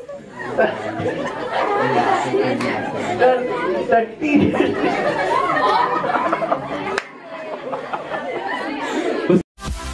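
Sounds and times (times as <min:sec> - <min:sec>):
overlapping voices chattering: 0:00.0 - 0:09.4.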